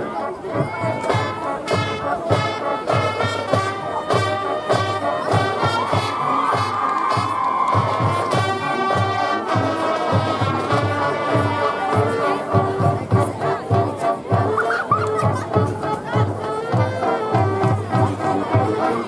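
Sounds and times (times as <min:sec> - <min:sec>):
marching band brass: 0:00.0 - 0:19.0
drum beat: 0:00.5 - 0:18.7
crowd cheering: 0:05.2 - 0:10.2.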